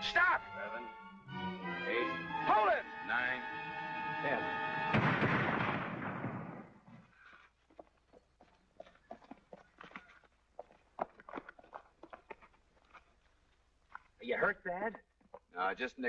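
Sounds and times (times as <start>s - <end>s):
shotgun blast: 4.9s - 6.8s
footsteps on dirt: 6.8s - 14.3s.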